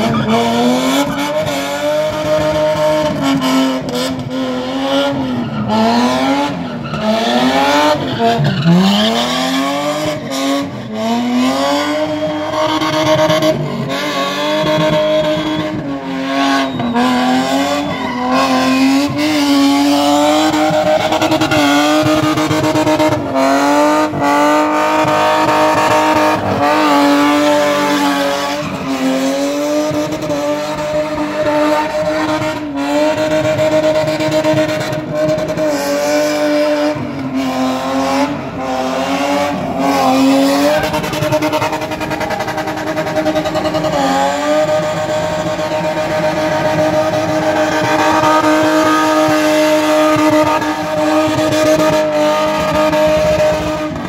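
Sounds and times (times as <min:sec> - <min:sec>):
car engine at high revs: 0:00.0 - 0:54.0
tyre squeal: 0:14.8 - 0:19.4.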